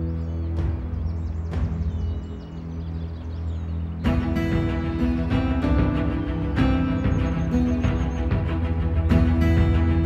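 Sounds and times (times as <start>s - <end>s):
low drone music: 0.0s - 10.0s.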